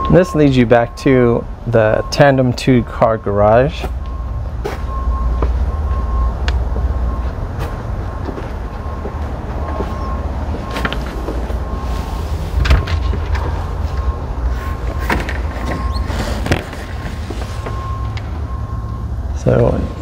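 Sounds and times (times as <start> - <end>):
construction work rumble: 0.0 - 20.0
road traffic: 0.0 - 20.0
footsteps: 6.7 - 11.8.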